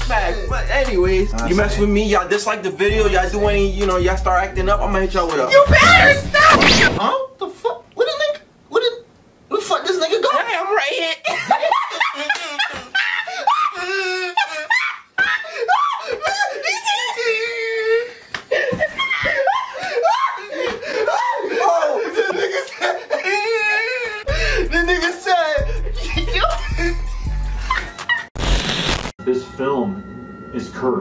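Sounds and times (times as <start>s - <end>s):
bass-heavy background music: 0.0s - 6.6s, 24.3s - 28.7s
burst of static-like noise: 5.8s - 7.0s, 28.4s - 29.2s
man laughing hard: 11.2s - 28.3s.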